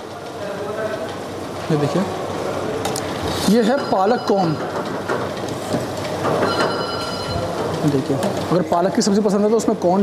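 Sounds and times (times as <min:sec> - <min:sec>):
steady noisy background: 0:00.0 - 0:10.0.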